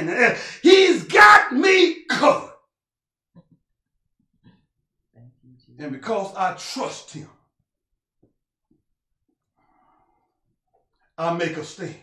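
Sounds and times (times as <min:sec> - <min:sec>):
man preaching loudly: 0:00.0 - 0:02.6, 0:05.8 - 0:07.3.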